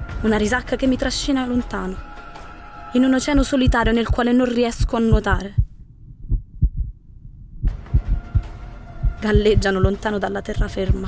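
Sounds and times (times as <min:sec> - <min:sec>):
heartbeat thumps: 0:03.2 - 0:11.0.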